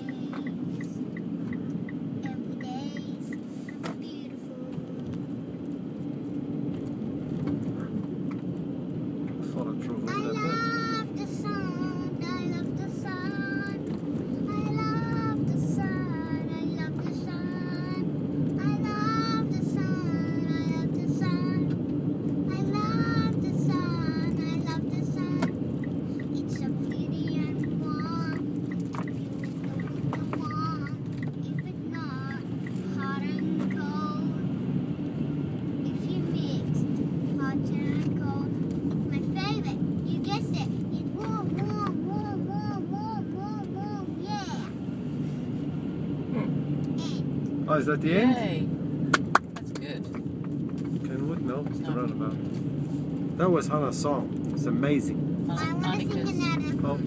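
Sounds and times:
girl singing: 0.0s - 0.9s, 2.2s - 5.0s, 10.1s - 13.8s, 14.4s - 21.7s, 22.5s - 25.6s, 26.2s - 28.5s, 29.3s - 34.4s, 35.9s - 36.7s, 37.4s - 38.5s, 39.1s - 44.7s
car road and engine hum: 0.0s - 57.0s.

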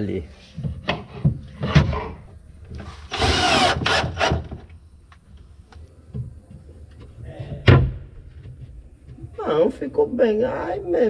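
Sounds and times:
cordless drill driving screw: 3.1s - 4.6s.

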